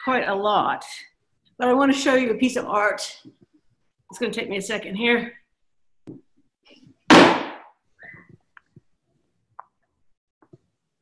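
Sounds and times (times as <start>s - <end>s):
sudden loud bang: 7.1s - 7.7s.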